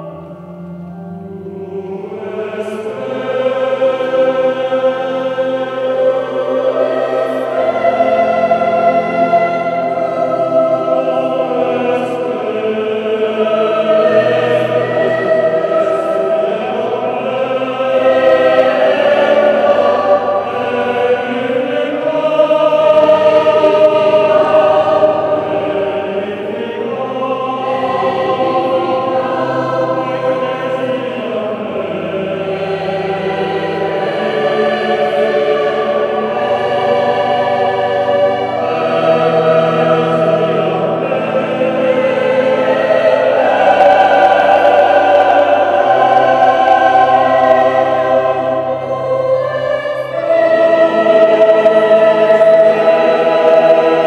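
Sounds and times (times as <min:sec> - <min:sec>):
mixed choir singing: 0:00.0 - 0:54.0.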